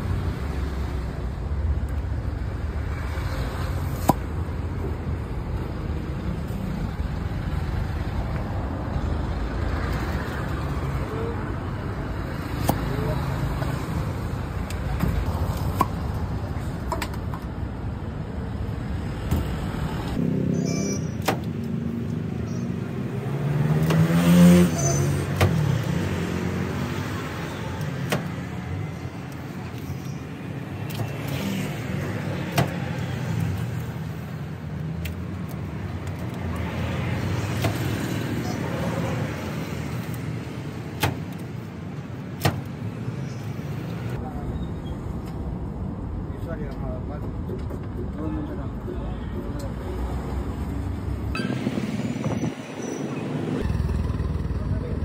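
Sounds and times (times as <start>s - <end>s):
roadside traffic: 0.0s - 55.0s
vehicle passing: 22.8s - 27.5s.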